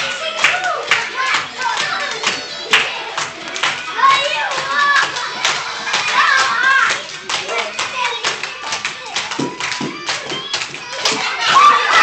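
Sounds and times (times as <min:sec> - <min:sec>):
background music: 0:00.0 - 0:12.0
children clapping hands: 0:00.0 - 0:12.0
children's voices: 0:00.0 - 0:12.0.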